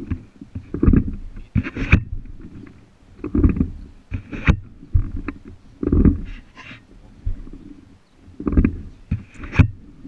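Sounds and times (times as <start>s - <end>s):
muffled rumbling and knocking: 0.0s - 10.0s.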